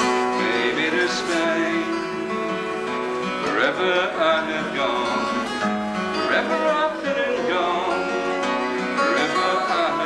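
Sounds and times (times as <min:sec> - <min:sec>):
acoustic guitar playing: 0:00.0 - 0:10.0
person singing folk-blues: 0:00.0 - 0:10.0.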